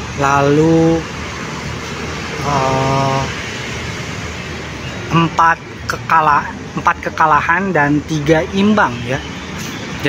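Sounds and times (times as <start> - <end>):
street traffic: 0.0 - 10.0
man making hesitation sound: 2.4 - 3.4.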